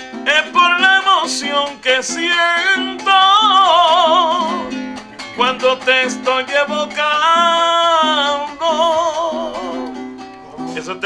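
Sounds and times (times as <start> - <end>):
man singing with vibrato: 0.0 - 11.0
strummed cuatro: 0.0 - 11.0.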